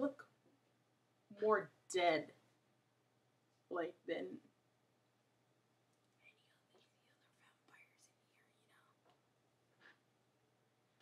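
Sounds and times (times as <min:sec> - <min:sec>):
faint whispered speech: 0:06.2 - 0:09.1.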